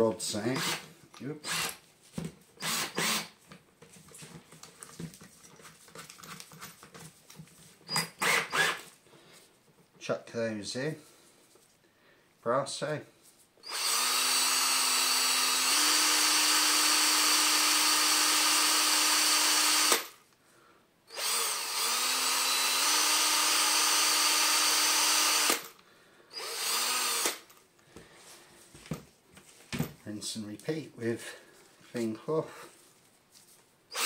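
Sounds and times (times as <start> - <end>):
cordless drill motor spinning: 0.5 - 1.8, 2.6 - 3.4, 7.9 - 8.9, 13.6 - 20.1, 21.1 - 27.5.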